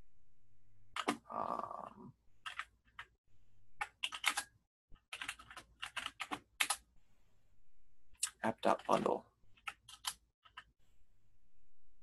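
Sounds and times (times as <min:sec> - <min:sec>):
computer keyboard typing: 0:02.4 - 0:03.1, 0:03.8 - 0:06.8, 0:08.7 - 0:10.7.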